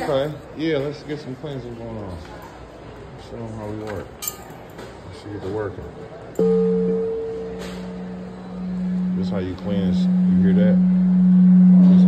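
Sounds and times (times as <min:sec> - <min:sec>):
crystal singing bowl ringing: 0:06.4 - 0:12.0.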